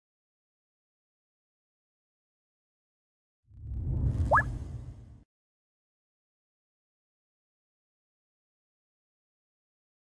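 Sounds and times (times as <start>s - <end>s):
low rumble: 3.5s - 5.3s
upward-gliding blip: 4.1s - 4.7s.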